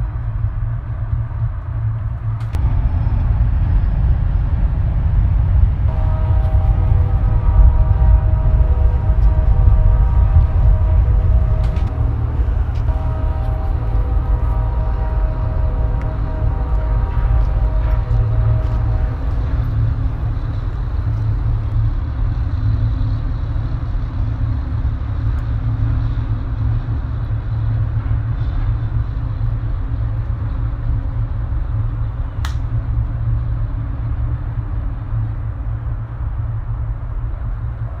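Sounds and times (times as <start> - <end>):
steady low rumble: 0.0 - 38.0.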